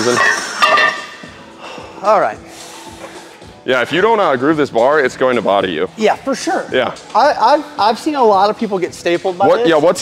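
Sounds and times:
metal weight plates clinking: 0:00.0 - 0:01.2.

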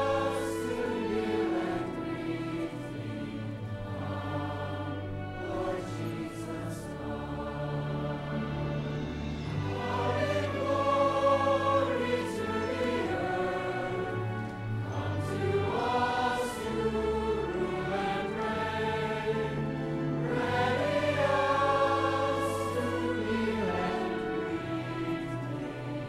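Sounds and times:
choir singing long notes: 0:00.0 - 0:26.0.

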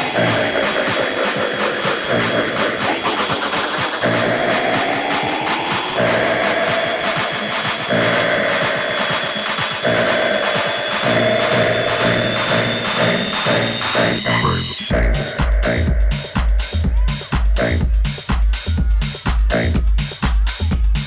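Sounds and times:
electronic dance music: 0:00.0 - 0:21.0.

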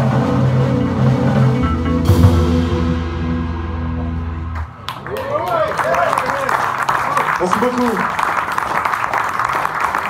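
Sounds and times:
organ and bass chord: 0:00.0 - 0:04.8
audience applause: 0:04.6 - 0:10.0.

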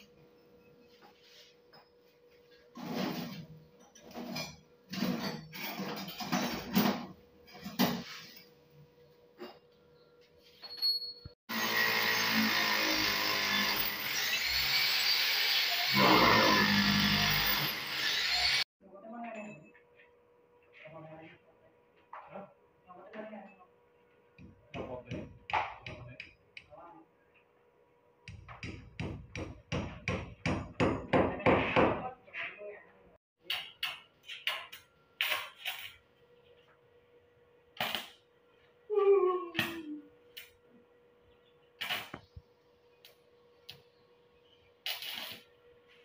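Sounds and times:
power drill boring into concrete: 0:11.5 - 0:18.6
hammer strikes on wall: 0:28.3 - 0:32.1.

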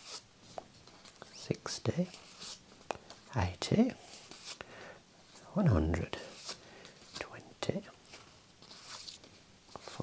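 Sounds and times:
soft whispered voice: 0:05.3 - 0:08.1
banknotes rustling: 0:08.1 - 0:10.0.

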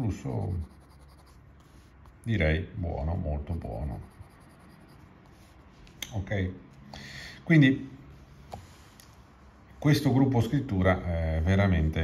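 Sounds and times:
pen nib scratching on paper: 0:00.2 - 0:02.2, 0:03.4 - 0:05.6.

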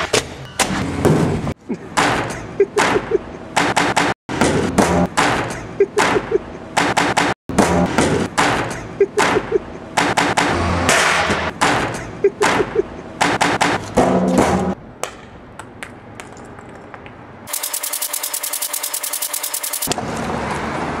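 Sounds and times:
sharp knocks and bangs: 0:00.0 - 0:16.0.

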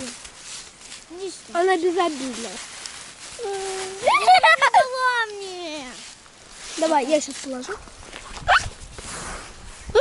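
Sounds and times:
soft rustling: 0:00.0 - 0:10.0.

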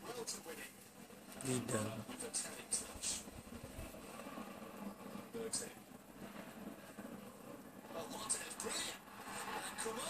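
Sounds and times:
televised football match: 0:00.0 - 0:06.6, 0:07.8 - 0:10.0.

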